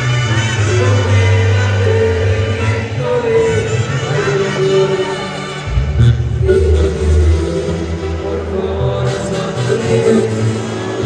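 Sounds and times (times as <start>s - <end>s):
live band music over pa: 0.0s - 11.0s
heavy low bass line: 5.5s - 10.0s.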